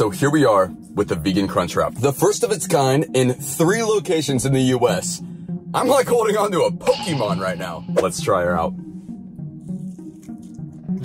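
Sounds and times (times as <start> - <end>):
quiet background music: 0.0 - 11.0
crunching and chewing: 9.6 - 10.8.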